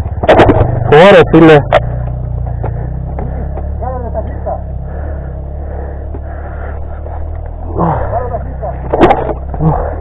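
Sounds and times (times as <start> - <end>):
dirt bike engine idling: 0.0 - 10.0.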